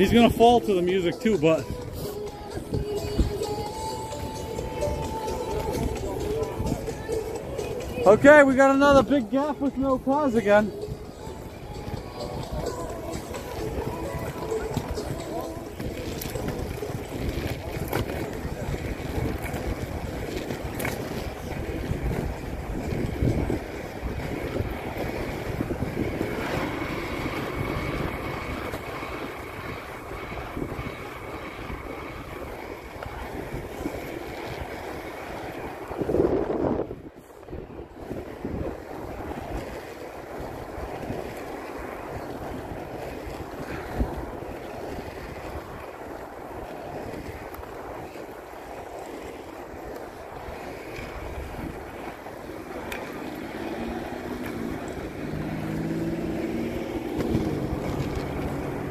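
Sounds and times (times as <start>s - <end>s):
skate wheels rolling on pavement: 0.0s - 58.9s
wind buffeting microphone: 0.0s - 58.9s.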